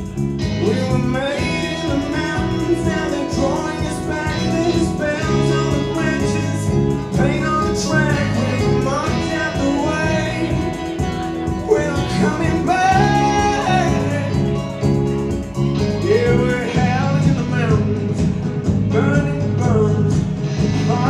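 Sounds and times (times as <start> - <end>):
live band playing: 0.0 - 21.0.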